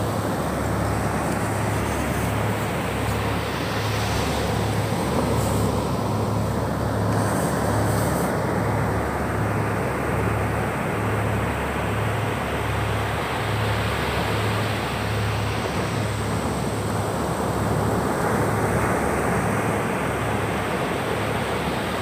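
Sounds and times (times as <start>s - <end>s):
small waves washing up beach: 0.0s - 22.0s.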